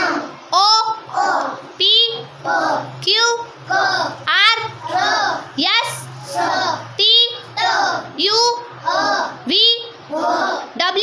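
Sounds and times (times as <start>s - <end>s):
children chanting letter sounds: 0.0s - 11.0s.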